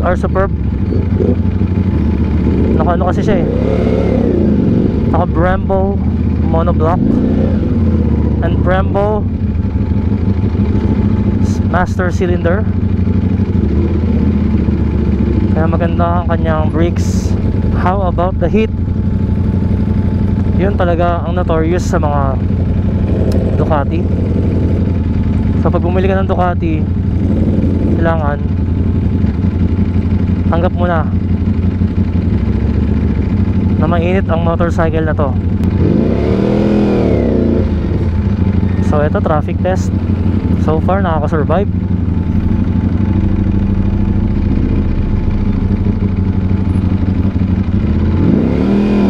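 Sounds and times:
motorcycle engine at low revs: 0:00.0 - 0:49.0.

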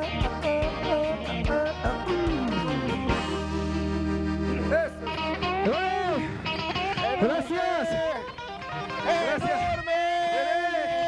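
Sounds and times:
accordion tuba and guitar band: 0:00.0 - 0:11.0
voices whooping and shouting: 0:07.4 - 0:11.0.

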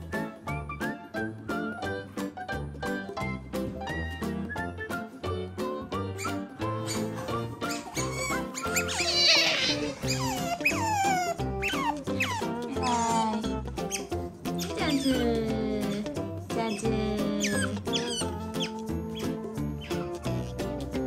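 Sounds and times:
background music with held chords: 0:00.0 - 0:21.0
otters squeaking: 0:06.0 - 0:21.0.

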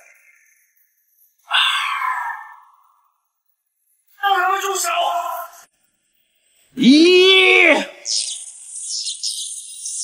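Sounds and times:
hissing crackling electric effect: 0:08.0 - 0:10.0.

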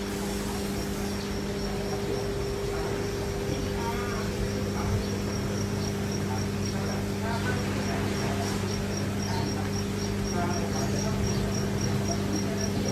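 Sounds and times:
low electrical hum: 0:00.0 - 0:12.9
murmur of voices: 0:00.0 - 0:12.9.

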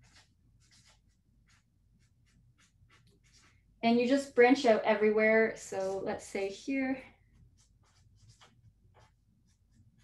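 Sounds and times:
pen scratching on paper: 0:00.0 - 0:04.2, 0:07.1 - 0:10.0.

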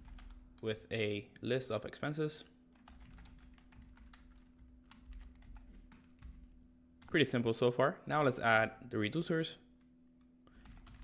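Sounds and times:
keyboard typing: 0:00.0 - 0:00.4, 0:02.8 - 0:07.1, 0:10.5 - 0:11.0
low steady hum: 0:00.0 - 0:11.0.

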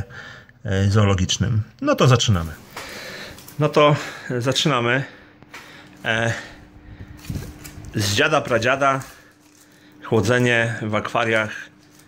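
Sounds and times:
steady low hum: 0:00.0 - 0:12.0
plastic sheet handling noise: 0:02.2 - 0:04.2, 0:05.4 - 0:12.0.

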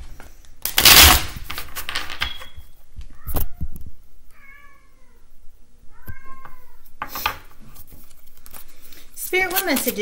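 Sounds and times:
cat meowing: 0:03.1 - 0:05.3, 0:05.9 - 0:06.9.

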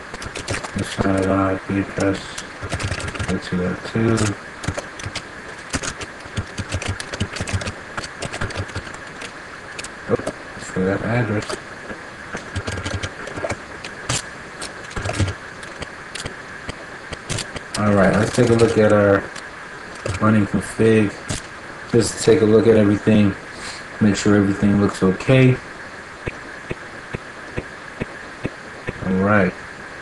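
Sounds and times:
faint evenly spaced ticks: 0:00.0 - 0:22.9, 0:26.2 - 0:29.2
steady background hiss: 0:00.0 - 0:30.0
computer keyboard typing: 0:00.2 - 0:01.4, 0:02.0 - 0:09.9, 0:12.4 - 0:16.4, 0:17.1 - 0:19.4, 0:20.0 - 0:20.2.

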